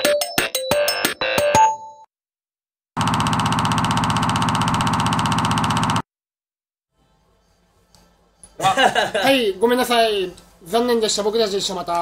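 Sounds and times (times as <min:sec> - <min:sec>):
loud rattling buzz: 0:03.0 - 0:06.0.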